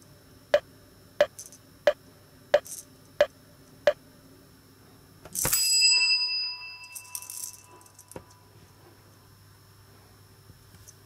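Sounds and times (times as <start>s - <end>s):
bright ringing tone: 5.4s - 8.5s.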